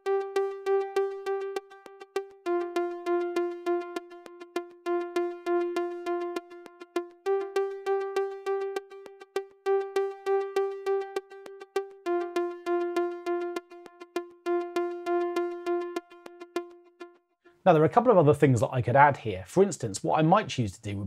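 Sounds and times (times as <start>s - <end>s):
repeating synth pluck note: 0.0s - 17.2s.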